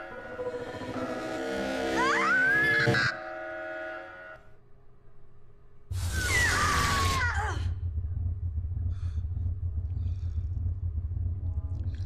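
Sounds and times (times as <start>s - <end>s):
low rumble: 5.9s - 12.0s.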